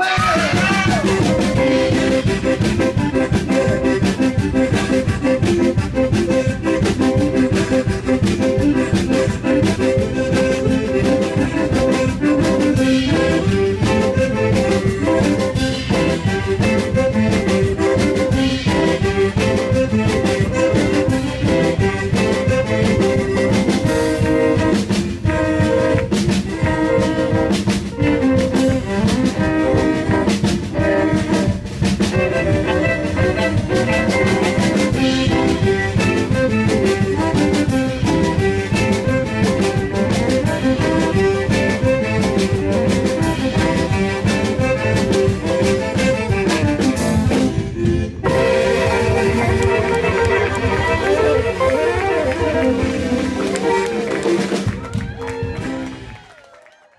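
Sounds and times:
archtop guitar: 0:00.0 - 0:56.0
bass guitar: 0:00.0 - 0:56.4
fiddle: 0:00.0 - 0:56.4
accordion: 0:00.0 - 0:56.5
tenor saxophone: 0:00.0 - 0:56.7
drums: 0:00.0 - 0:56.9.

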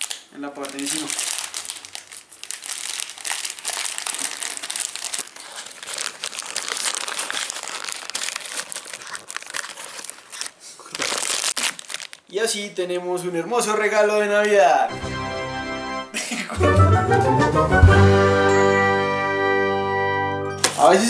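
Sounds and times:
plastic bag crinkling: 0:00.0 - 0:12.7.

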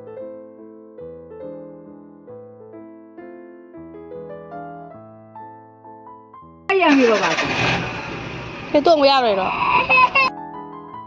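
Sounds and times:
soft piano music: 0:00.0 - 0:06.7, 0:10.3 - 0:11.0
car engine starting: 0:06.7 - 0:10.3.

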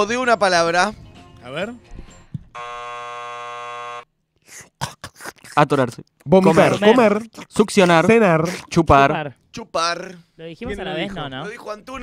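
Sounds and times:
game-show buzzer: 0:02.6 - 0:04.1.

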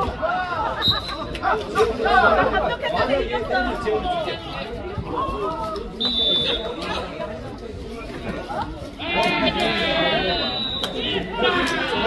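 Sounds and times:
players calling out and talking: 0:00.0 - 0:12.0.

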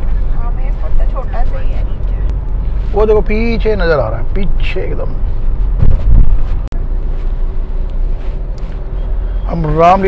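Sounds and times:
car road and engine rumble: 0:00.0 - 0:10.0.

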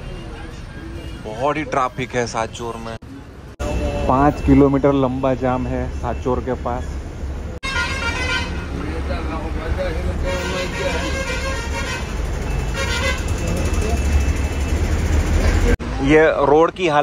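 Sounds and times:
bus engine rumble: 0:02.6 - 0:16.0
vehicle horns honking: 0:07.6 - 0:08.9, 0:10.2 - 0:14.0.

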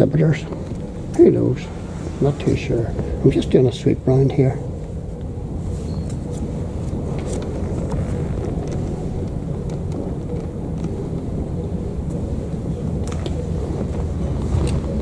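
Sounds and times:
low rumble: 0:00.0 - 0:15.0
faint irregular clicks: 0:06.0 - 0:15.0.

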